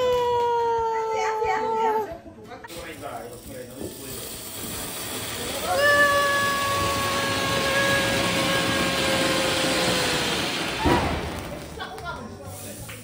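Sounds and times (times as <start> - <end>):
firework fountain hissing: 2.7 - 13.0
sharp crack: 6.9 - 12.2.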